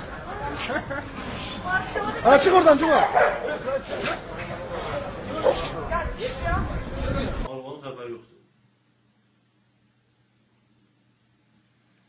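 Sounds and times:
people's voices: 0:00.0 - 0:07.5
dog barking: 0:03.0 - 0:03.5, 0:05.4 - 0:05.7.

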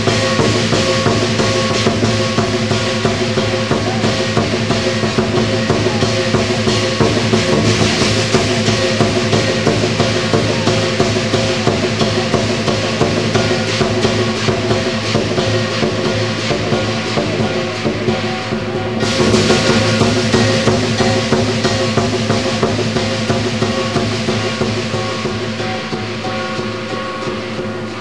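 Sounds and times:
cymbals crashing: 0:00.0 - 0:28.0
rapid drum strikes: 0:00.0 - 0:28.0
sustained ringing tones: 0:00.0 - 0:28.0.

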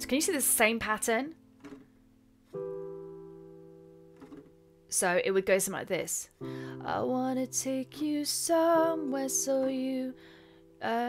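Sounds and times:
digital piano chord: 0:00.0 - 0:05.0.

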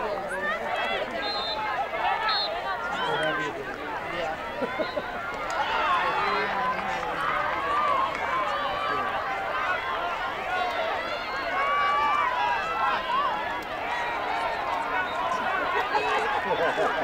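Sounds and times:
crowd calling out and chattering: 0:00.0 - 0:17.0.

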